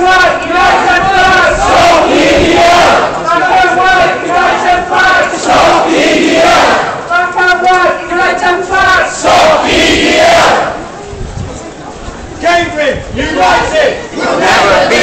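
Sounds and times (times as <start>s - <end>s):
crowd shouting a slogan: 0.0s - 10.8s, 13.1s - 15.0s.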